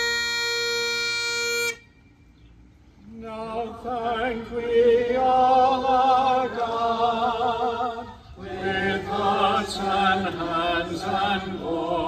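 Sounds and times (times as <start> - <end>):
bagpipes holding note over drones: 0.0 - 2.2.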